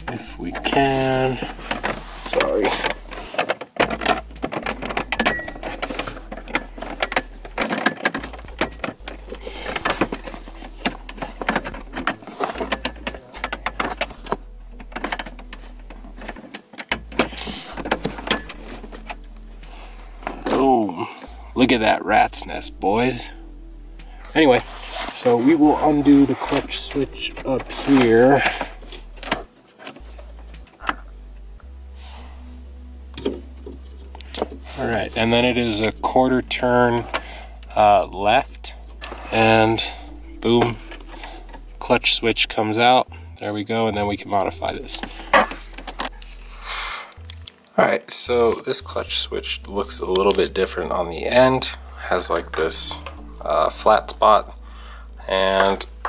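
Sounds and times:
plastic trim clicking and rattling: 1.4s - 19.2s.

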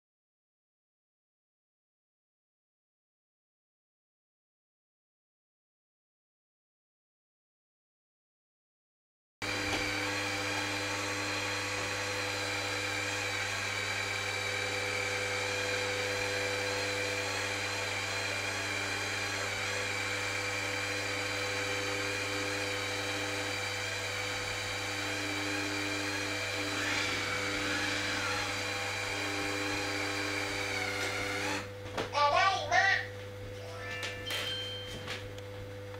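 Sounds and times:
robot vacuum whine: 9.4s - 31.7s
short beeps: 33.9s - 35.1s.

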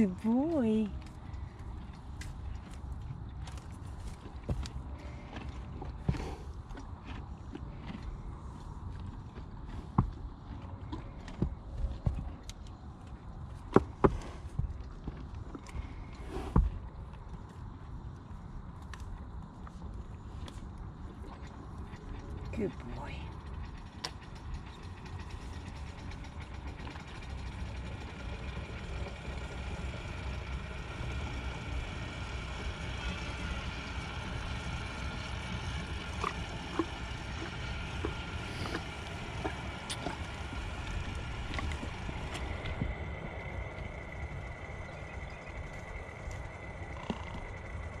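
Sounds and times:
low rumble: 0.0s - 48.0s
horse drinking water: 1.0s - 17.7s, 19.6s - 48.0s.

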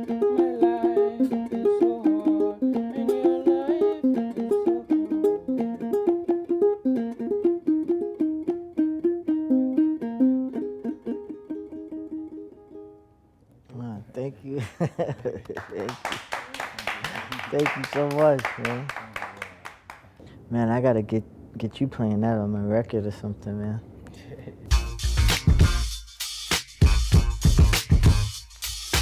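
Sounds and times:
plucked folk lute melody: 0.0s - 13.1s.

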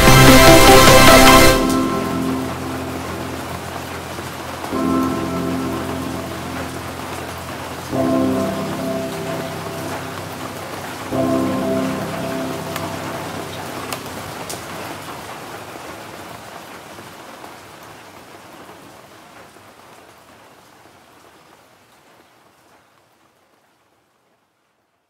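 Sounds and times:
electronic music: 0.0s - 14.0s
held synth chord: 0.0s - 14.6s
rain: 0.0s - 25.0s.

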